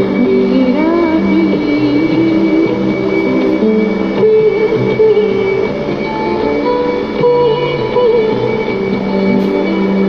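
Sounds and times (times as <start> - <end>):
music through radio speaker: 0.0 - 10.0.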